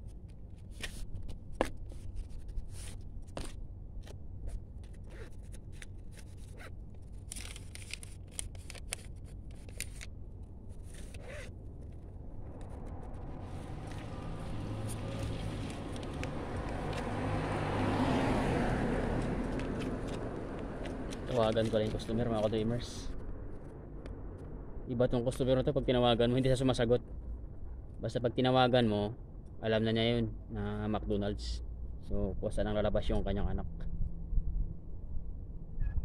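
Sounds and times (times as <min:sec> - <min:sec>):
low steady rumble: 0:00.0 - 0:36.0
faint rustling scrapes: 0:01.8 - 0:03.6.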